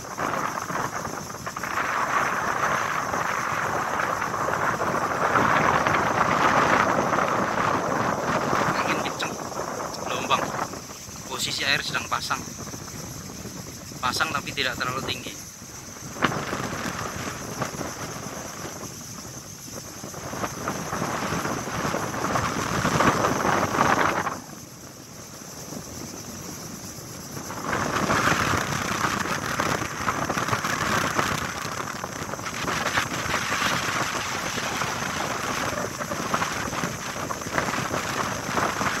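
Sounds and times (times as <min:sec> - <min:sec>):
waves washing: 0:00.0 - 0:39.0
wind gusting across microphone: 0:00.0 - 0:39.0.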